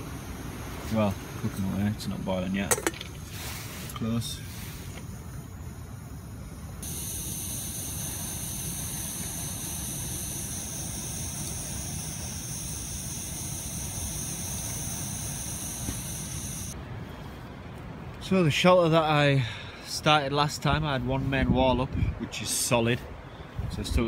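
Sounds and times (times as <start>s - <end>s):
stove burner hissing: 0.0s - 16.8s
wind rumble on microphone: 20.6s - 22.4s, 23.0s - 24.0s.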